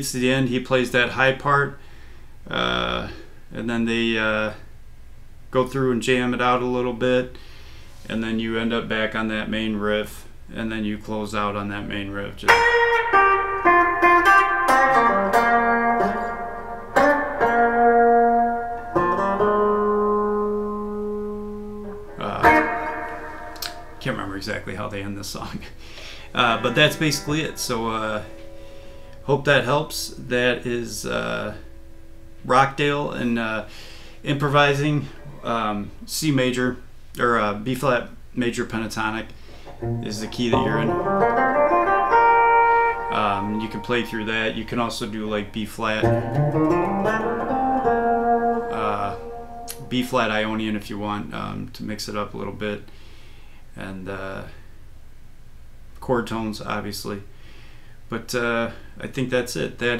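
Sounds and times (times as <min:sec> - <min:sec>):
electric guitar riff: 0:12.5 - 0:35.5, 0:39.5 - 0:50.3.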